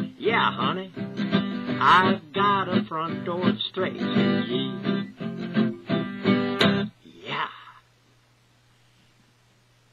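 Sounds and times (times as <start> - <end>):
acoustic guitar strumming: 0.0 - 7.0.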